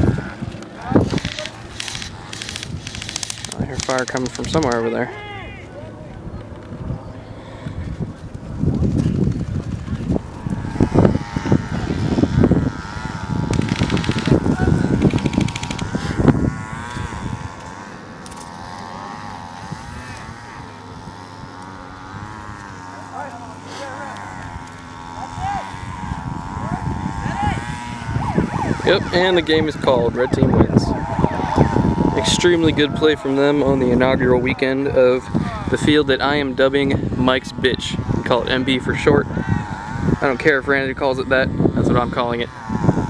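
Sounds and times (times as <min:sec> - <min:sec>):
wind rumbling on microphone: 0:00.0 - 0:43.0
far-off shouting voices: 0:04.6 - 0:06.5, 0:22.8 - 0:35.8
distant airsoft gunfire bursts: 0:13.2 - 0:16.1.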